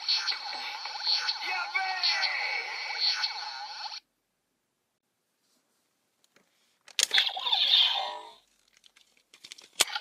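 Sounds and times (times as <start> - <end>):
processed voice call: 0.0 - 3.5.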